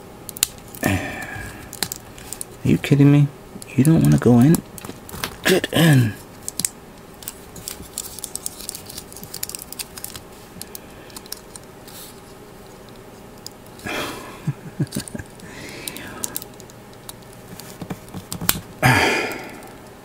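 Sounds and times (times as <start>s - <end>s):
breathy exhale with grunt: 0.8s - 1.7s, 18.8s - 19.8s
plastic parts clicking and tapping: 1.4s - 2.5s, 3.6s - 5.4s, 6.4s - 11.7s, 14.8s - 18.7s.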